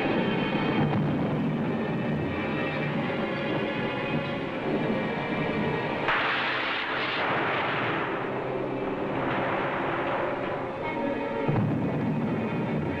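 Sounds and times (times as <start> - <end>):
dramatic film score music: 0.0 - 13.0
loud crash: 6.0 - 13.0.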